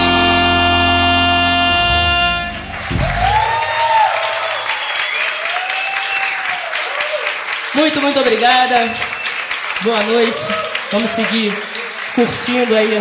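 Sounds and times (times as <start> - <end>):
band holding final chord: 0.0 - 3.8
audience applauding: 1.8 - 13.0.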